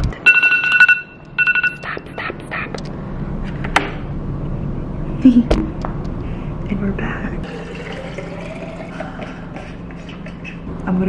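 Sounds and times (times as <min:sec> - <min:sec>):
electronic alarm beeping: 0:00.2 - 0:02.1.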